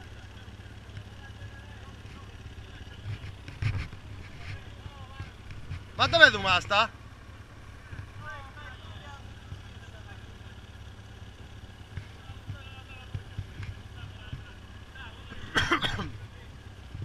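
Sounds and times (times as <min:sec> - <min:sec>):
faint voices: 0:00.0 - 0:06.9
motorcycle engine idling: 0:00.0 - 0:17.0.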